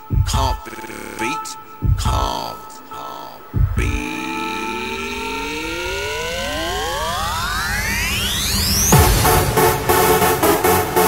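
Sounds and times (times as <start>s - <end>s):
synthesizer riser gliding upward: 4.0s - 11.0s.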